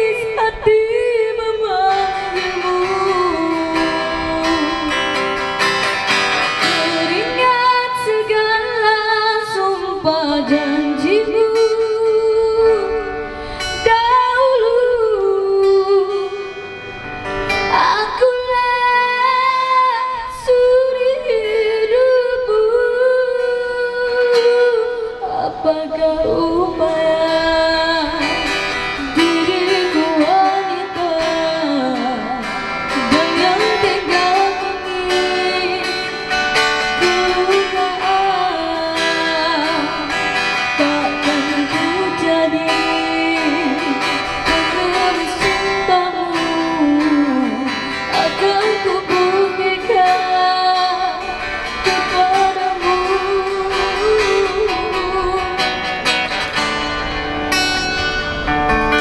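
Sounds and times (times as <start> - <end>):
girl singing into a microphone: 0.0 - 56.7
acoustic guitar: 0.0 - 59.0.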